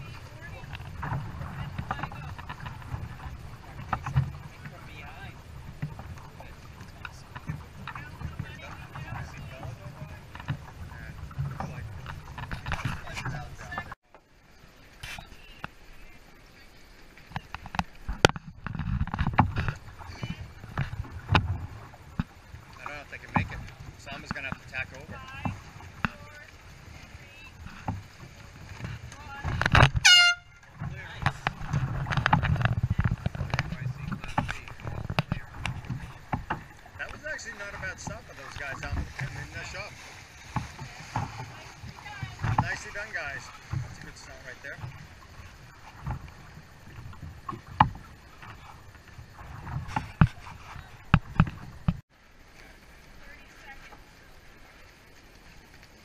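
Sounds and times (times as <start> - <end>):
water slapping boat hull: 0.0 - 56.0
wind: 0.0 - 56.0
air horn blast: 30.0 - 30.7.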